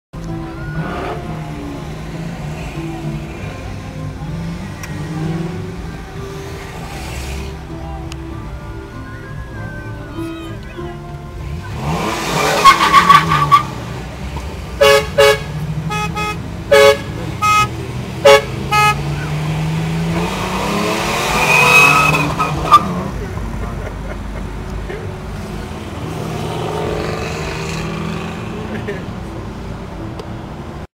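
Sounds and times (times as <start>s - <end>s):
car engine and road noise: 0.1s - 30.9s
car horns honking: 0.2s - 6.3s, 9.8s - 23.4s.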